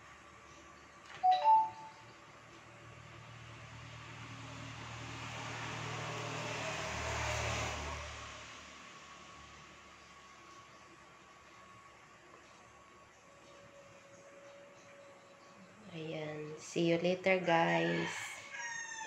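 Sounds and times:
two-note electronic beep: 1.2 - 2.0
vehicle passing by: 2.6 - 10.3.

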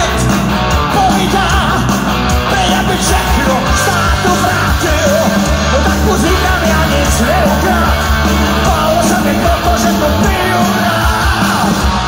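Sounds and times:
live hard rock band: 0.0 - 12.0
singer shouting: 0.0 - 12.0.

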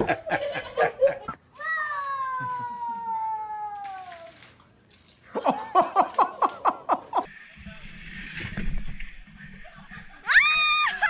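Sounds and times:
toddler shouting: 1.6 - 4.2.

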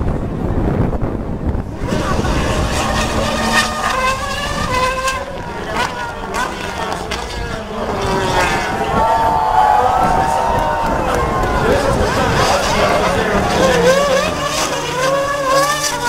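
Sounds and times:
racing car engines revving: 0.3 - 16.0
people talking: 4.8 - 16.0.

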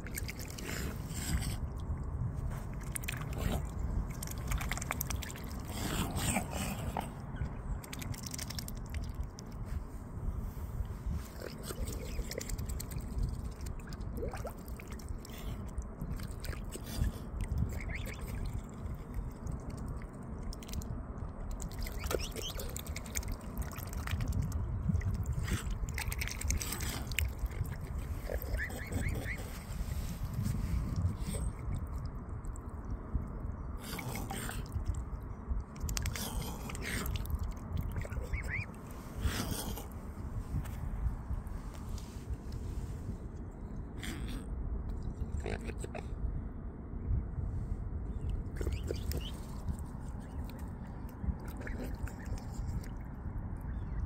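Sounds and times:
swans splashing water: 0.0 - 9.6, 11.3 - 32.6, 35.8 - 39.9, 48.5 - 53.8
steady low rumble: 0.0 - 54.0.

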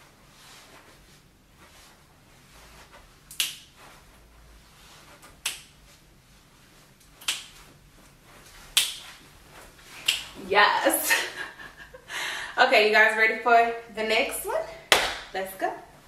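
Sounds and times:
finger snaps: 3.3 - 3.6, 5.4 - 5.7, 7.2 - 7.5, 10.0 - 10.3.

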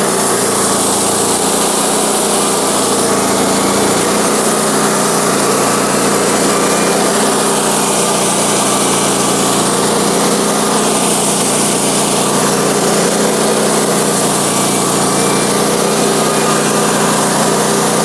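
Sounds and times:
band blade cutting log: 0.0 - 18.0
bandsaw mill engine under load: 0.0 - 18.0.

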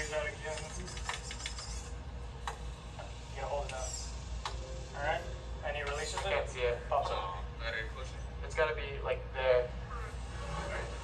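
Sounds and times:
sharp clicks: 0.6 - 1.7.

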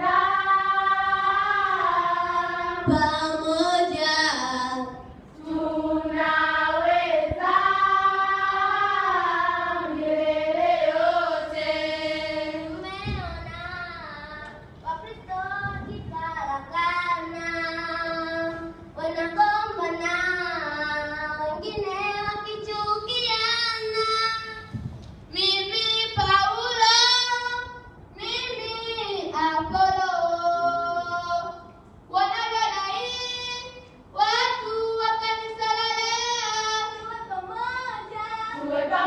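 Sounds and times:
girls singing together: 0.0 - 39.0.

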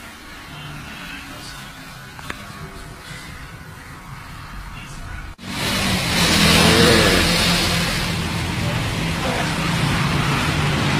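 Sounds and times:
street traffic noise: 0.0 - 10.9
vehicle engine running: 0.6 - 10.9.

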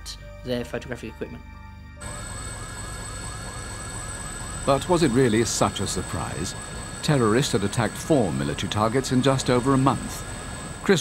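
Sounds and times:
siren yelping: 2.0 - 11.0.

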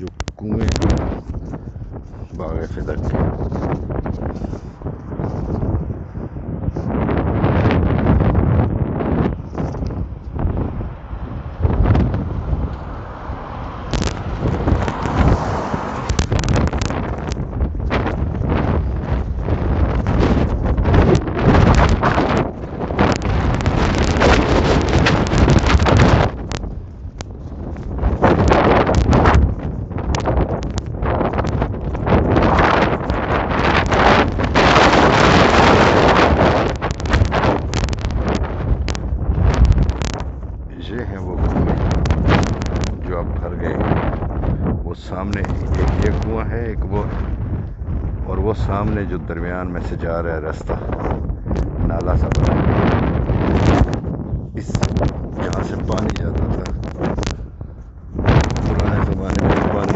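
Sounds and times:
strong wind buffeting microphone: 0.0 - 59.9.

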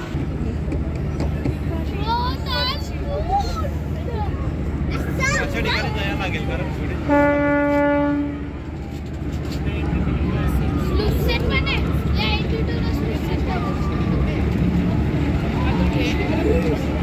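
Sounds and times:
people talking: 0.0 - 7.1, 9.4 - 17.0
ferry horn blast: 7.0 - 8.6.

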